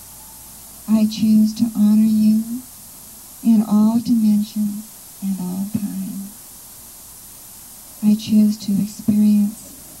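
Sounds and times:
woman speaking into a microphone: 0.9 - 2.7, 3.4 - 6.4, 8.0 - 9.9.

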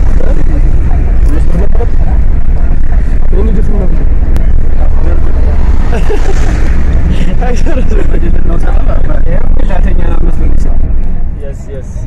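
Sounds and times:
minibus engine rumble: 0.0 - 12.0
people talking: 0.0 - 12.0.

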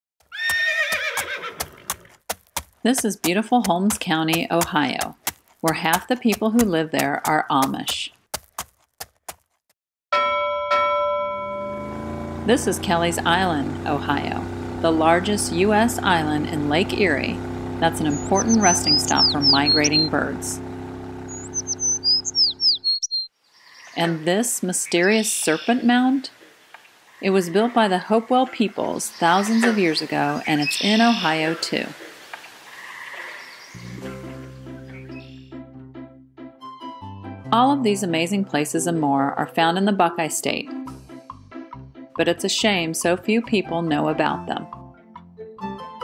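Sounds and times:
hooves clip-clopping: 0.2 - 9.6
horse whinnying: 0.3 - 2.1
songbird chirping: 15.0 - 20.6, 21.3 - 35.6
background music: 33.8 - 46.0.

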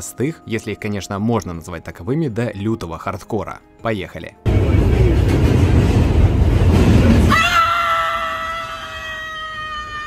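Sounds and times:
loud low rumble: 4.5 - 7.4
woman screaming: 7.3 - 10.0.

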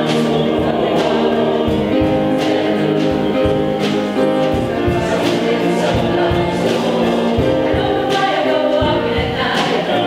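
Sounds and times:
low beats: 0.0 - 10.0
mixed choir singing in harmony: 0.0 - 10.0.

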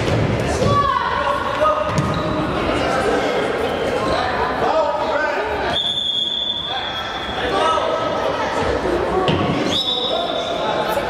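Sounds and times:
sneakers squeaking on floor: 1.8 - 2.7
long high whistle: 5.7 - 6.8.

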